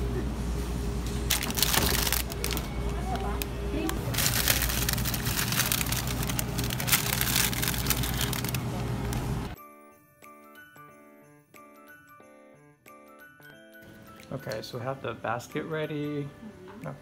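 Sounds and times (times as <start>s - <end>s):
plastic wrappers crinkling: 1.3s - 9.6s.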